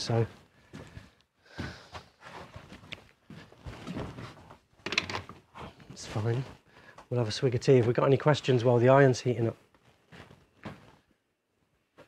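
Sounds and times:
shuffling: 0.0s - 4.7s, 9.7s - 12.0s.

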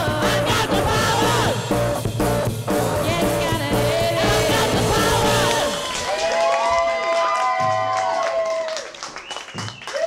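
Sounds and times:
live rock band: 0.0s - 5.9s
audience clapping and cheering: 5.0s - 10.0s.

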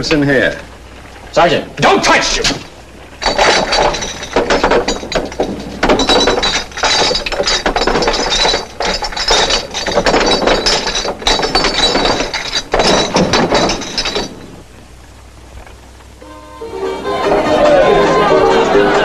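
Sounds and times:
glass bottles clinking: 2.4s - 14.8s.

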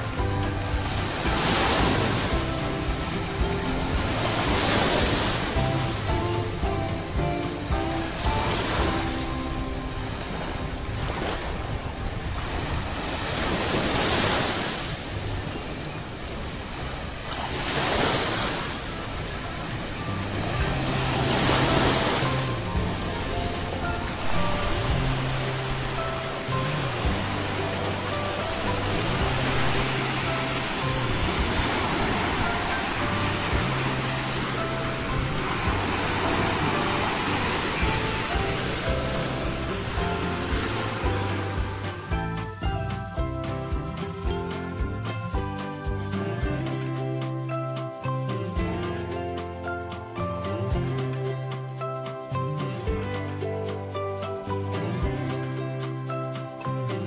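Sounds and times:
background music with bass: 0.0s - 57.0s
waves washing onto beach: 0.0s - 57.0s.

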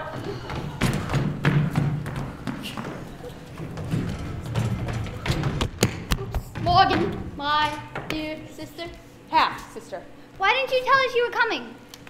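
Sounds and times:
running footsteps on wooden floor: 0.0s - 8.4s.

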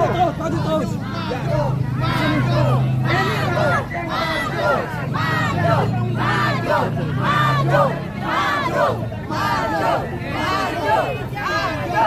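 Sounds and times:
crowd chanting in unison: 0.9s - 12.0s.

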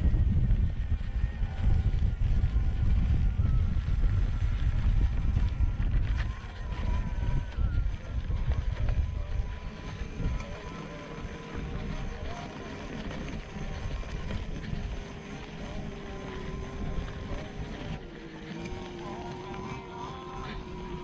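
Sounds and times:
electric motor whining: 0.0s - 21.0s
low rumble: 0.0s - 21.0s.

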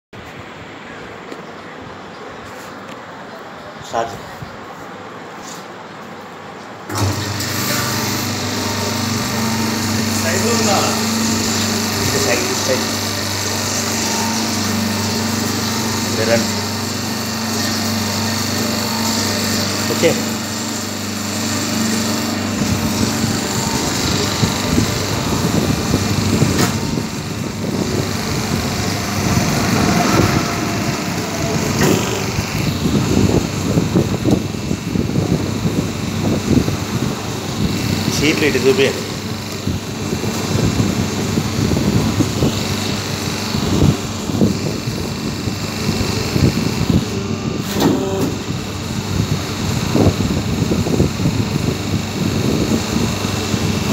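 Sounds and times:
hydraulic pump motor humming: 6.9s - 53.9s.

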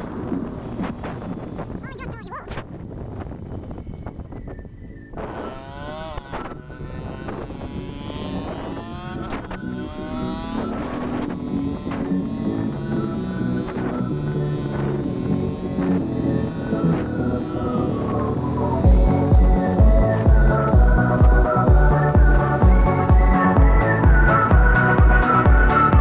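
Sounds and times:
motorcycle engine accelerating: 0.0s - 26.0s
wind noise on microphone: 0.0s - 26.0s
background music: 5.8s - 26.0s.

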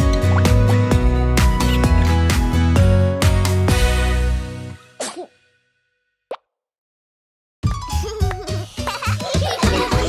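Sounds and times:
children's song music: 7.6s - 10.0s.

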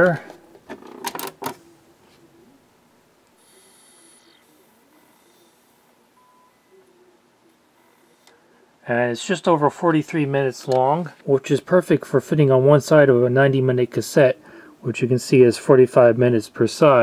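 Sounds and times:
cd drive spinning: 3.2s - 6.1s, 6.7s - 8.6s.

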